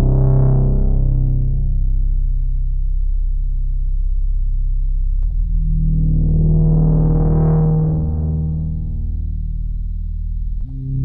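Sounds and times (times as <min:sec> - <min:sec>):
low synthesizer tone: 0:00.0 - 0:11.0.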